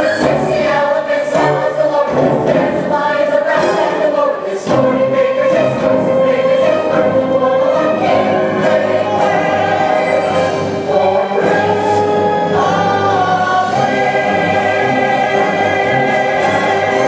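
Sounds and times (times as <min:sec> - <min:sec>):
ensemble singing in chorus: 0:00.0 - 0:17.0.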